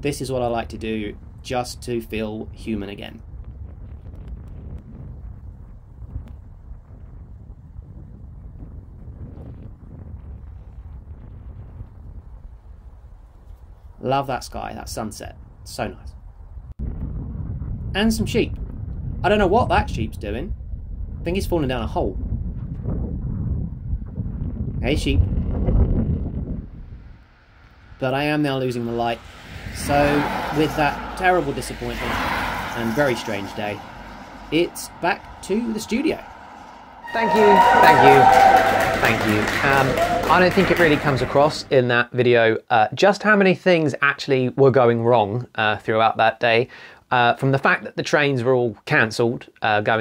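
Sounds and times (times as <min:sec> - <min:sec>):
wind buffeting microphone: 0:00.0 - 0:41.5.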